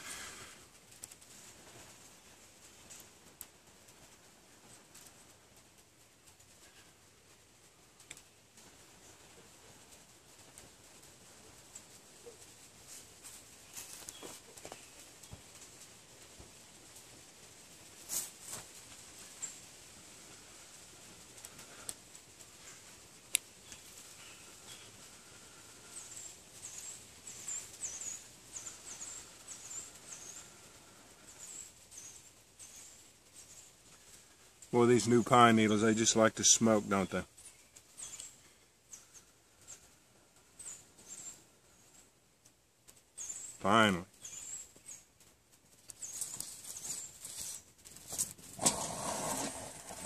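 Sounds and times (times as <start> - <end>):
small birds chirping: 0.0 - 17.3, 18.1 - 50.0
dry pine needles rustling: 0.0 - 50.0.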